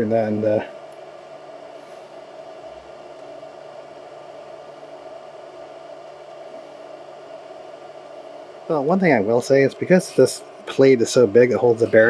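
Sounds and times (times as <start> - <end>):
faint motor hum: 0.0 - 12.0
fan whir: 0.0 - 12.0.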